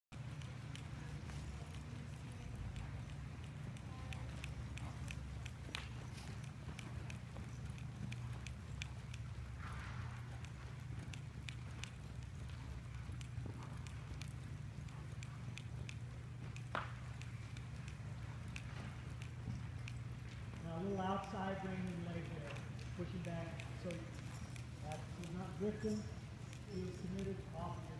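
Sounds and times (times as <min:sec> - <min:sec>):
steady low hum: 0:00.1 - 0:27.9
hoofbeats on dirt: 0:00.2 - 0:27.9.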